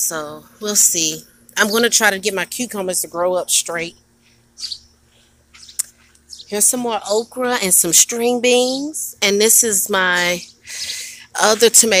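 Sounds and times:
faint steady hum: 0.0 - 12.0
small birds chirping: 1.5 - 2.2, 3.8 - 12.0.

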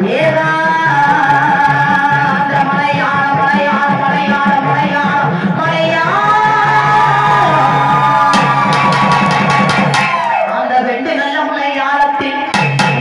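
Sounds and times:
woman singing folk song: 0.0 - 7.4, 10.5 - 12.6
barrel drum beat: 0.7 - 10.5, 12.5 - 13.0
sharp percussion strokes: 6.2 - 10.4, 12.5 - 13.0.

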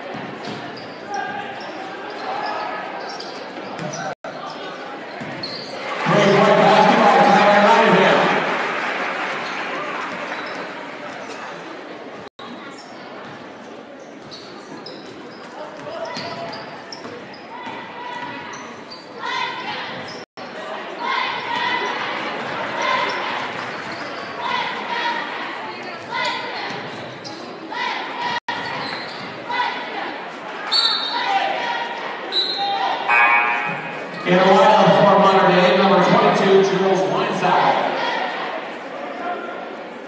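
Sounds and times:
crowd voices echoing: 5.8 - 11.1, 31.1 - 39.8
loud voice: 6.0 - 8.5, 33.1 - 38.3.

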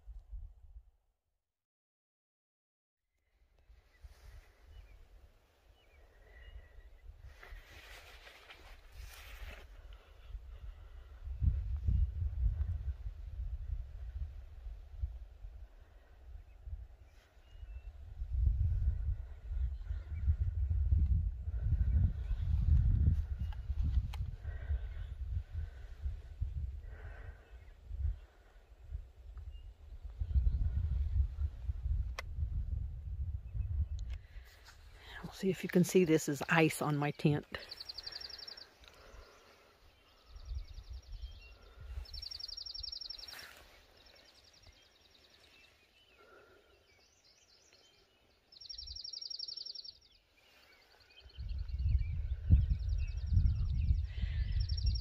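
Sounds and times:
wind buffeting microphone: 8.9 - 35.4, 40.0 - 44.8, 50.6 - 55.0.

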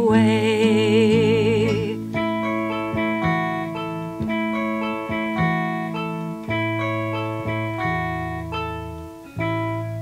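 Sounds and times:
guitar chords ringing: 0.0 - 10.0.

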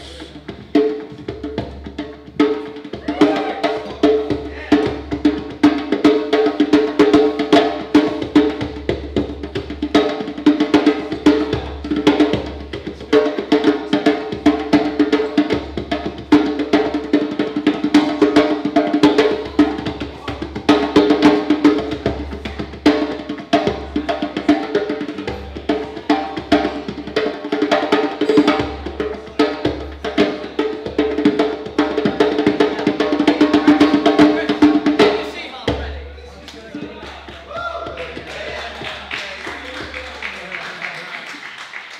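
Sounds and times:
djembe fast hand strikes: 0.0 - 36.1.

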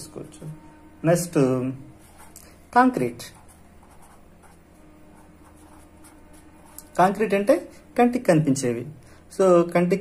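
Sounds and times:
marker pen writing on paper: 2.0 - 2.5, 3.2 - 7.0.

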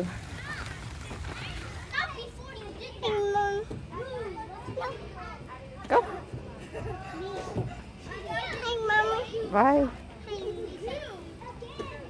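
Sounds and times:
distant children playing: 0.0 - 12.0.

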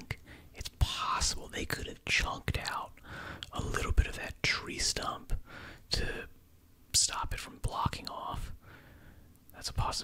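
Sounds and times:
man whispering: 0.0 - 8.6, 9.5 - 10.0.

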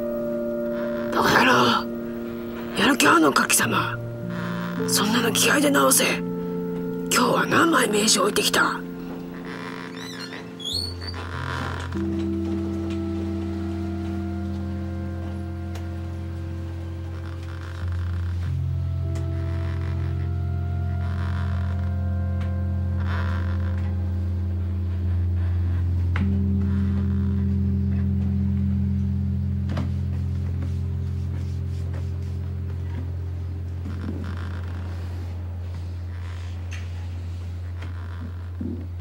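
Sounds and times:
film music low chords: 0.0 - 39.0.

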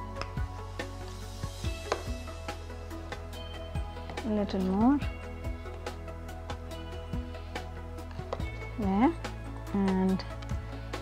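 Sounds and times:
background music sustained tones: 0.0 - 11.0.

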